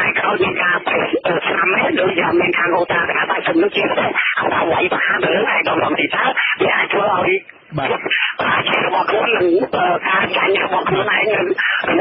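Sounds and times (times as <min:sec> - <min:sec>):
man talking on radio: 0:00.0 - 0:12.0.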